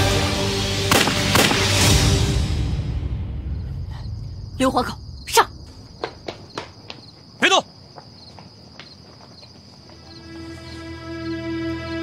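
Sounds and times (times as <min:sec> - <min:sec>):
crickets chirping: 0:01.0 - 0:12.0.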